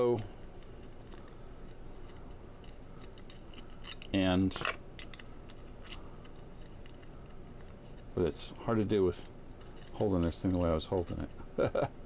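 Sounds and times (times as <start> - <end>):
faint metallic clicks and scrapes: 0.5 - 11.4.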